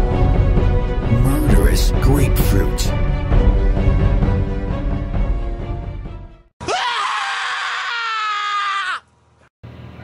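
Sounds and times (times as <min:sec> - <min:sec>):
high-pitched human scream: 0:06.6 - 0:09.1.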